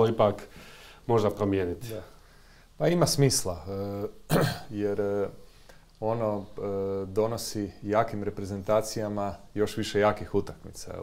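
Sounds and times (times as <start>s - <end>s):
man talking: 0.0s - 2.2s, 2.8s - 11.0s.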